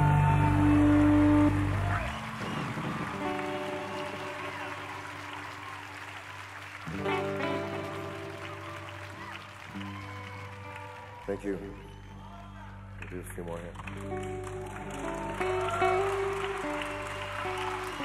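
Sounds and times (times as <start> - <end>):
live rock band playing: 0.0 - 5.4, 6.9 - 11.2, 14.0 - 18.0
audience applause: 0.0 - 18.0.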